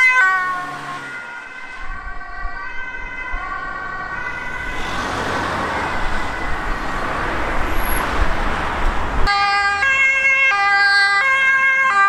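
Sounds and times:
two-tone fire engine siren: 0:00.0 - 0:07.0, 0:09.2 - 0:12.0.

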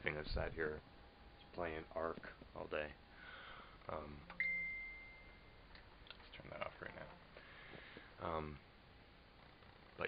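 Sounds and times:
high electronic ding: 0:04.3 - 0:05.6.

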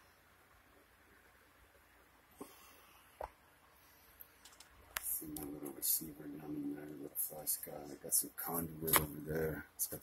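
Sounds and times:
sharp click: 0:08.8 - 0:09.2.

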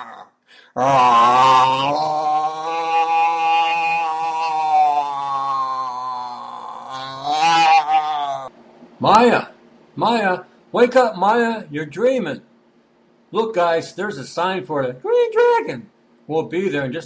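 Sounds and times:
person moaning: 0:00.0 - 0:08.5.

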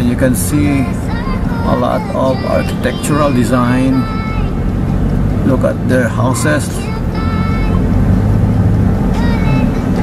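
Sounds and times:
car engine rumble: 0:00.0 - 0:10.0
road noise inside car: 0:00.0 - 0:10.0.

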